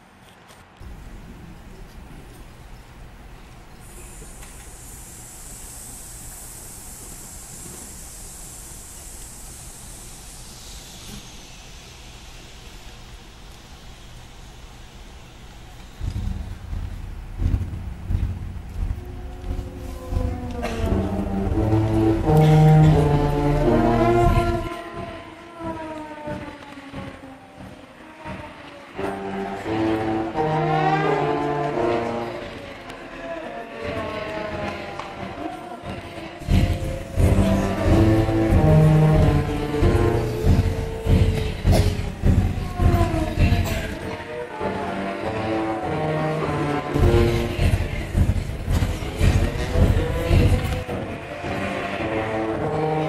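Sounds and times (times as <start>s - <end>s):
hissing sounds: 0.8s - 44.2s
low pounding beats: 0.8s - 53.0s
concert band low brass chords: 15.9s - 24.9s, 29.0s - 32.9s, 36.4s - 53.0s
high held note: 18.8s - 24.8s.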